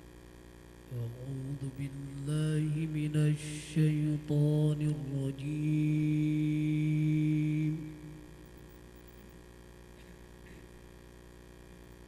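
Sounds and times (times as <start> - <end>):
man chanting melodic recitation: 0.9 - 8.3.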